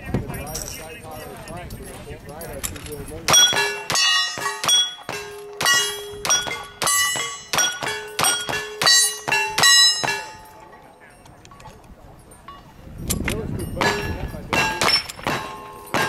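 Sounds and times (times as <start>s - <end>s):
people talking: 0.0s - 7.4s, 9.4s - 16.0s
bullets ringing steel target: 3.0s - 11.2s, 13.6s - 16.0s
gunshots: 13.8s - 16.0s.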